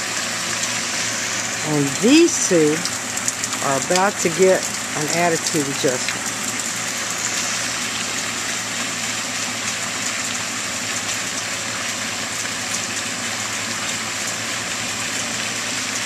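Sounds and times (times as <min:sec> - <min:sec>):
running water rushing: 0:00.0 - 0:16.0.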